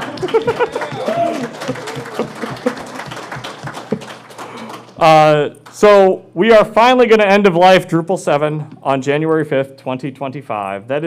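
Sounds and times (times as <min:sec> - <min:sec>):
audience applauding: 0:00.0 - 0:05.8.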